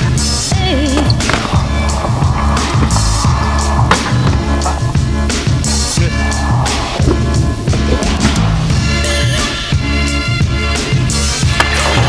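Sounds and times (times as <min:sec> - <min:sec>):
bike tyres rolling on concrete: 0:00.0 - 0:09.8
bike scraping against ledge: 0:00.5 - 0:09.8.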